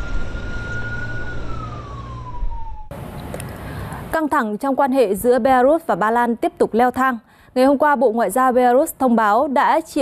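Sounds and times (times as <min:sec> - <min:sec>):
emergency vehicle siren: 0:00.0 - 0:03.0
low engine rumble: 0:00.0 - 0:04.1.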